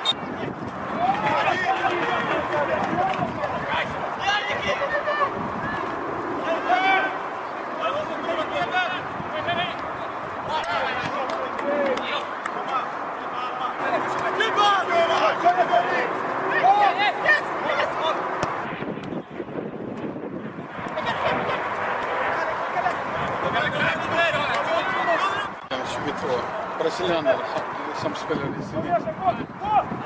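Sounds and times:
voices shouting and calling: 0:00.0 - 0:18.8, 0:20.6 - 0:30.0
outdoor background noise: 0:00.0 - 0:30.0.

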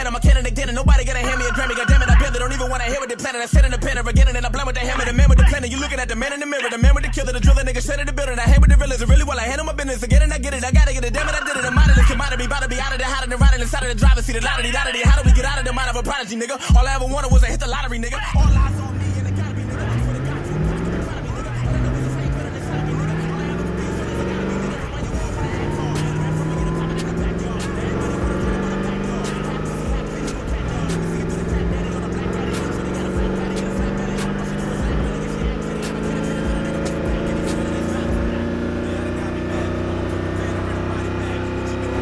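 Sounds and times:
car engine accelerating through gears: 0:16.8 - 0:42.0.

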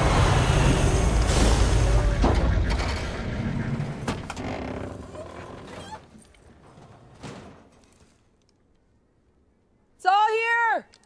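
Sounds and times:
truck engine rumbling: 0:00.0 - 0:06.6.

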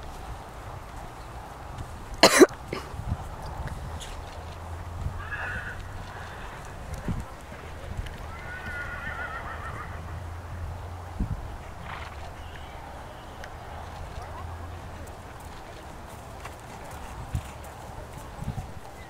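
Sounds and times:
horse hooves on grass: 0:00.0 - 0:19.0
horse whinnying: 0:05.1 - 0:06.8, 0:08.2 - 0:10.2.

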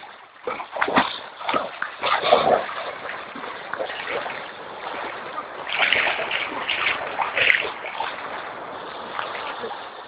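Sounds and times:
dog swimming splashes: 0:00.0 - 0:10.0.

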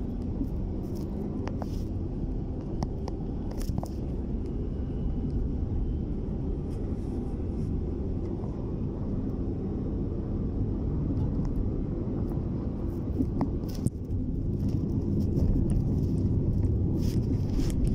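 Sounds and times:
low street rumble: 0:00.0 - 0:17.9.

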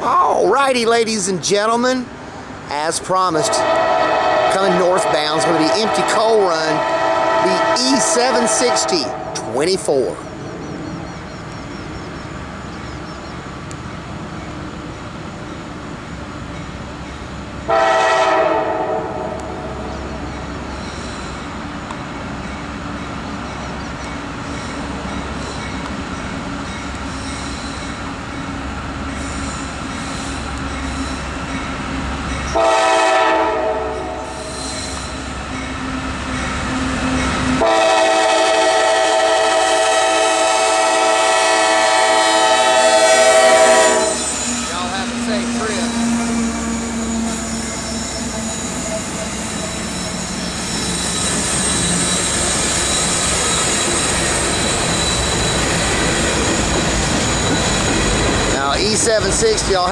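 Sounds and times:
diesel locomotives running: 0:00.0 - 0:59.9
locomotive air horn: 0:03.4 - 0:09.6, 0:17.7 - 0:19.6, 0:32.5 - 0:34.3, 0:37.6 - 0:49.4.

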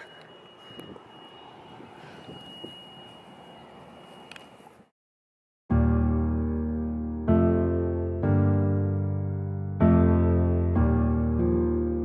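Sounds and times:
thin high tone: 0:00.0 - 0:04.8
small click: 0:04.3 - 0:04.5.

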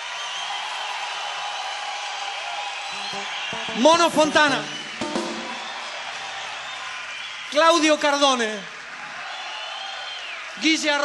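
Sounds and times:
audience applauding: 0:00.0 - 0:11.0.

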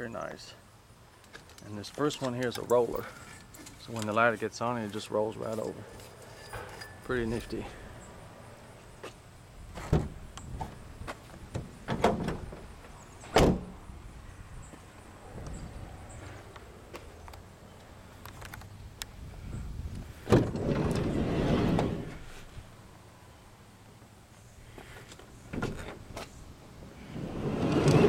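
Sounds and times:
van door slamming: 0:09.8 - 0:10.2, 0:13.3 - 0:13.7
sliding door clunking and rolling: 0:11.5 - 0:13.7, 0:20.2 - 0:22.3, 0:27.0 - 0:28.0.

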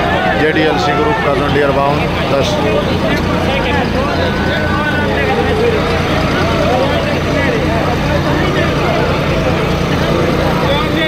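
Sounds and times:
crowd voices: 0:00.0 - 0:11.0
tractor diesel engine running: 0:00.0 - 0:11.0.

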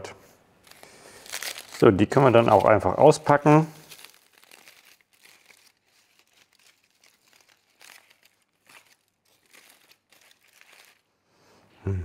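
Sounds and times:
aluminium foil crinkling: 0:00.6 - 0:11.1.

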